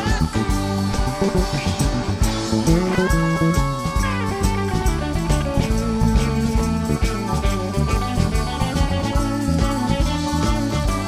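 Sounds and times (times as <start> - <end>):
electric guitar lead lines: 0.0 - 11.0
live rock band playing: 0.0 - 11.0.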